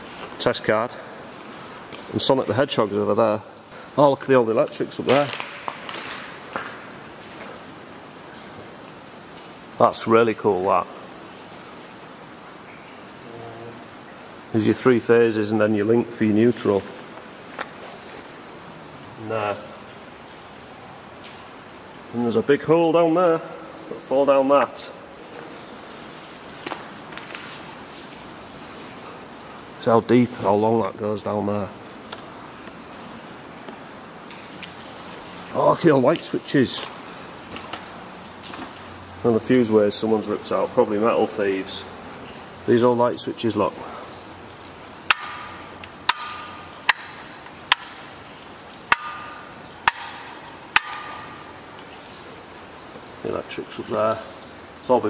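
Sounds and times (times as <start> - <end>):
steady background hiss: 0.0 - 55.0.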